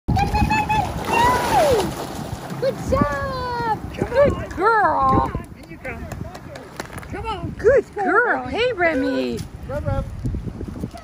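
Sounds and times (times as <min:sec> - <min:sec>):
water splashing: 0:00.1 - 0:09.6.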